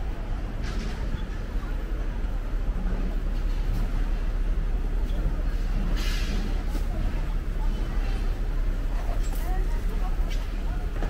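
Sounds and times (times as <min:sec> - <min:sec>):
faint voices: 0:00.0 - 0:11.0
low rumble of city traffic: 0:00.0 - 0:11.0.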